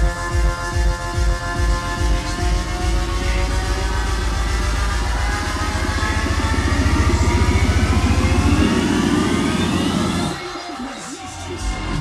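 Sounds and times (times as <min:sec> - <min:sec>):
fast pulsing dance beat: 0:00.0 - 0:12.0
rising synth sweep: 0:00.0 - 0:12.0.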